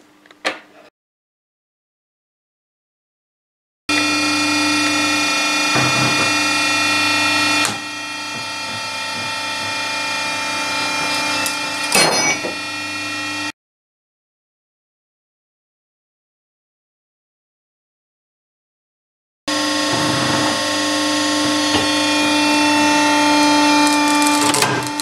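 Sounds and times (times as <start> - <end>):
hydraulic pump humming: 3.9 - 13.5, 19.5 - 25.0.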